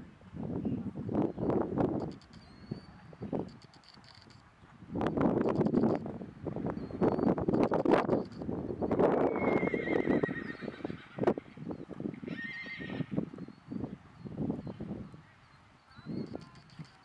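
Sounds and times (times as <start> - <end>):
horse whinnying: 9.3 - 11.6, 12.2 - 13.1.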